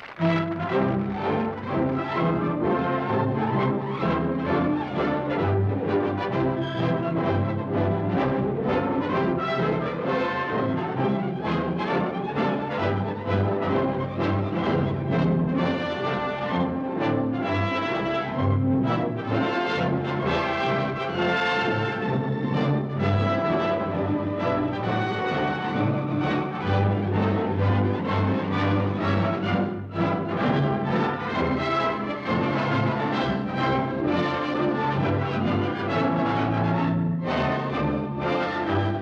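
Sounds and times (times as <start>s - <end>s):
orchestral music led by brass: 0.0s - 39.0s.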